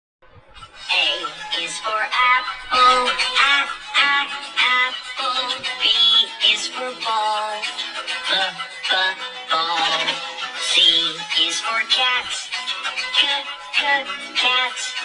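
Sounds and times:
backing music: 0.2s - 15.0s
person singing: 0.2s - 15.0s.

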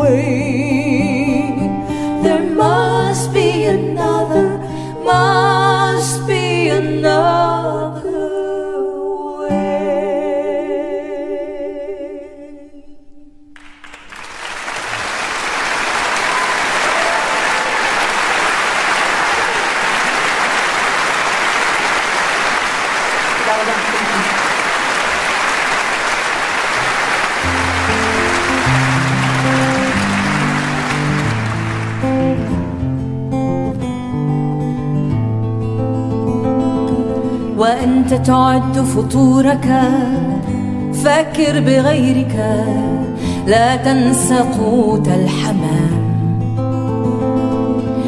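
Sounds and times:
audience applauding: 13.6s - 33.0s
acoustic guitar picking: 27.4s - 48.0s.

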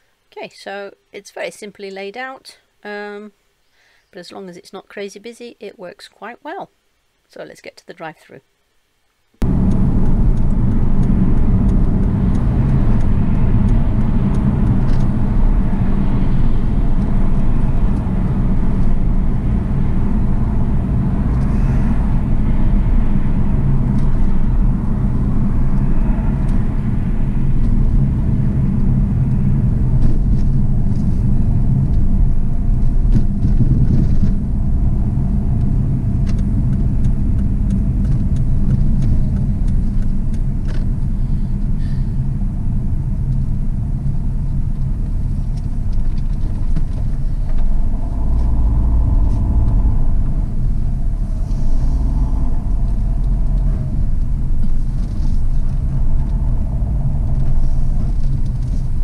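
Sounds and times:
car cabin road and engine noise: 9.4s - 59.0s.

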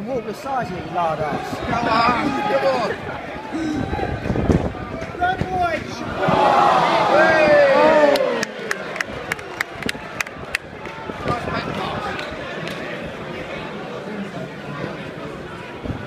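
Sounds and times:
crowd noise: 0.0s - 16.0s.

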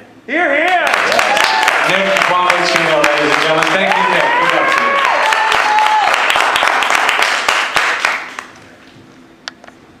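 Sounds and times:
audience applause: 0.8s - 8.5s.

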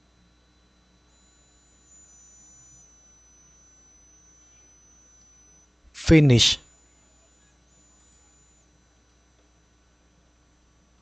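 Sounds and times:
faint electronic whine: 1.0s - 6.1s.

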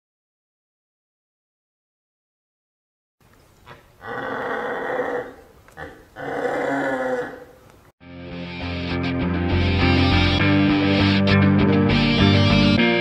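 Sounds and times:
growling animal roars: 4.0s - 7.6s
rock music with electric guitar: 8.0s - 13.0s.

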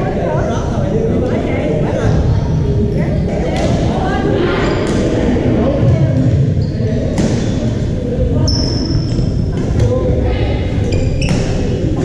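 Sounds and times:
sneaker squeaking on floor: 6.5s - 7.1s, 8.4s - 9.5s, 10.8s - 11.7s.

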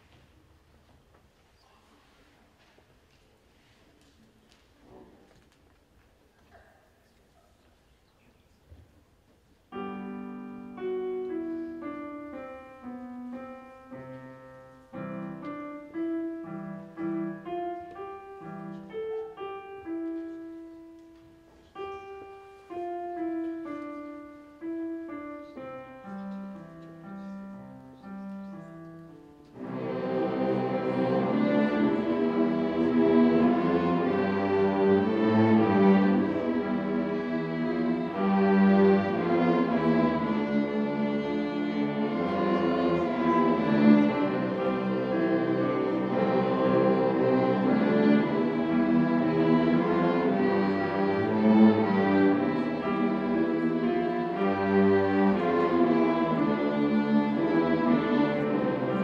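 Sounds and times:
string orchestra bowed notes: 9.7s - 59.0s.

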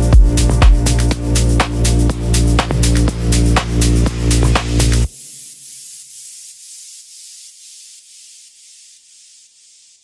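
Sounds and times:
pulsing white-noise hiss: 0.0s - 10.0s.

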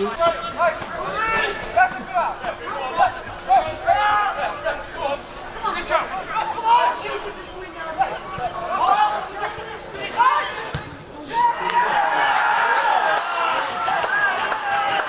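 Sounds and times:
people shouting and talking: 0.0s - 15.0s.

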